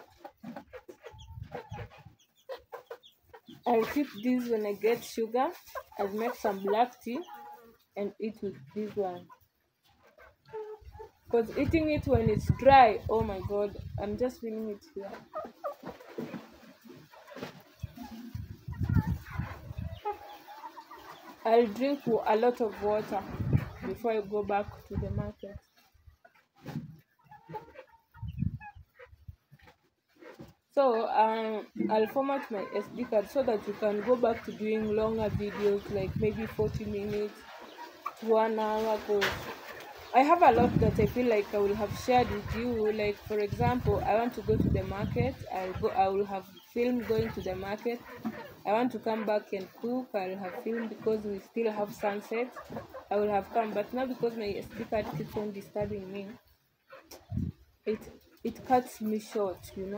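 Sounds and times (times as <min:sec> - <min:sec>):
chicken peeps: 0:00.0 - 0:58.6
chickens clucking: 0:00.0 - 0:59.9.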